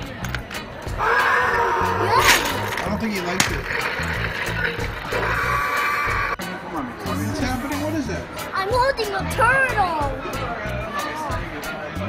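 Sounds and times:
toy dinosaur roar from speaker: 5.1s - 6.4s.

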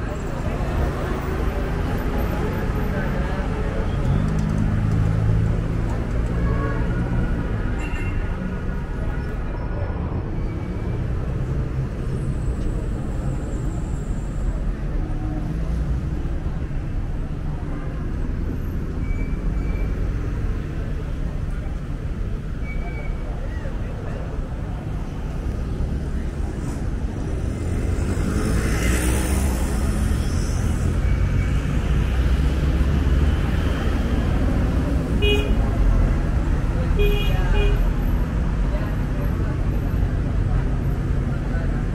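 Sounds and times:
cars passing: 0.0s - 41.9s.

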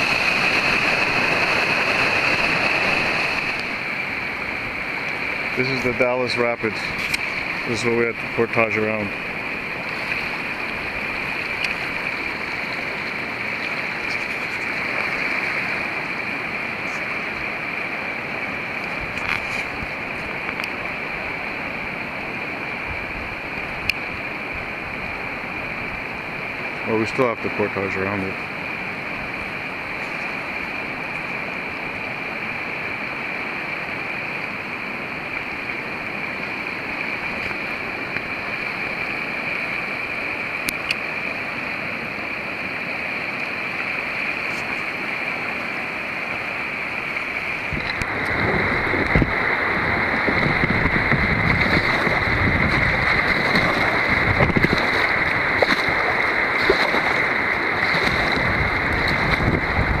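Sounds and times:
river rapids rushing: 0.0s - 60.0s
wind buffeting microphone: 47.4s - 60.0s.

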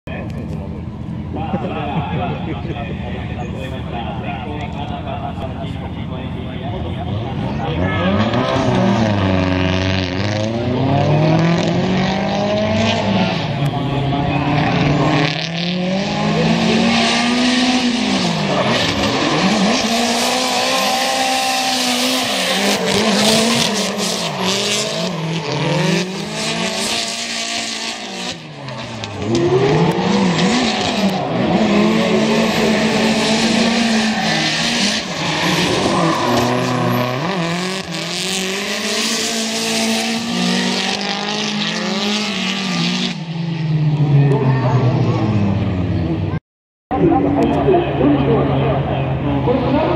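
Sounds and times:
car engines revving: 0.1s - 49.9s
tyres squealing and skidding: 16.2s - 42.9s.

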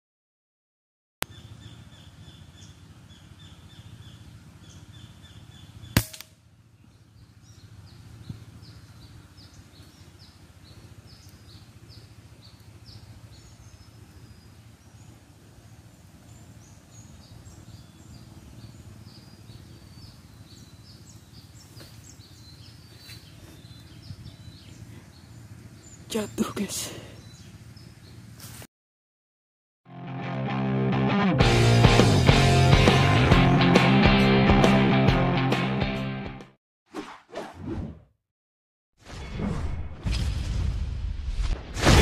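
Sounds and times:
air rifle shot: 6.0s - 6.4s, 41.4s - 42.0s.

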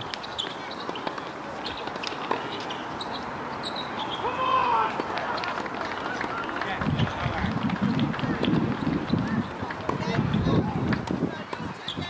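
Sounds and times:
muffled talking: 4.6s - 12.0s.

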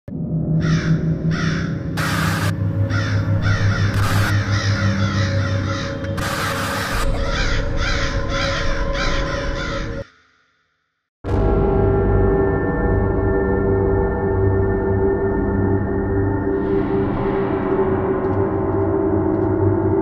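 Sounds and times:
low music drone: 0.1s - 10.0s, 11.3s - 20.0s
crows cawing: 0.6s - 10.5s.

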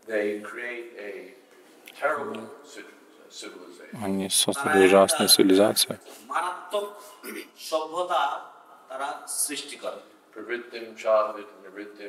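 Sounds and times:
man speaking: 2.0s - 12.0s.

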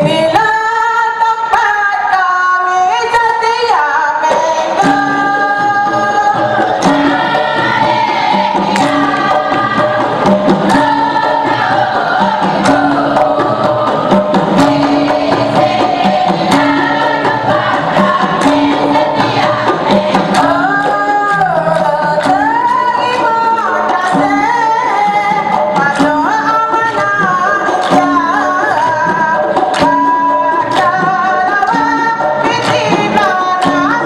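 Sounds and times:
women's chorus singing in unison: 4.1s - 34.0s
sharp percussion hits: 4.3s - 34.0s.

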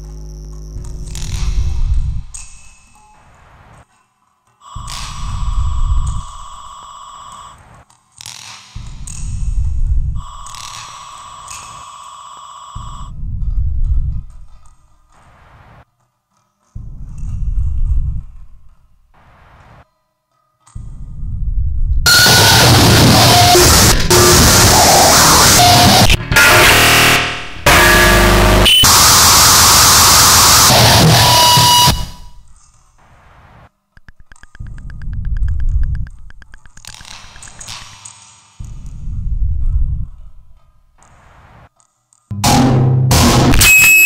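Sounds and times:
low distorted rumbles: 0.0s - 2.4s, 4.8s - 6.6s, 8.8s - 10.4s, 12.8s - 14.7s, 16.8s - 19.8s, 20.8s - 32.6s, 33.2s - 37.7s, 38.6s - 41.6s
wall of harsh noise: 22.1s - 32.5s.

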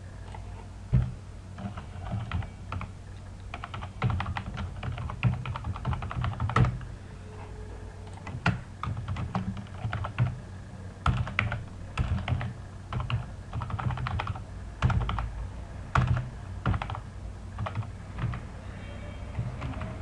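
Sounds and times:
typing on computer keyboard: 1.6s - 6.9s, 8.1s - 10.4s, 11.0s - 15.3s, 15.9s - 17.0s, 17.6s - 18.5s, 19.3s - 20.0s.

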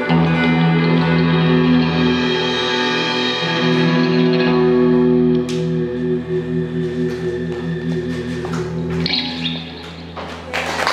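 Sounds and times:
guitars ringing chord: 0.0s - 10.5s.

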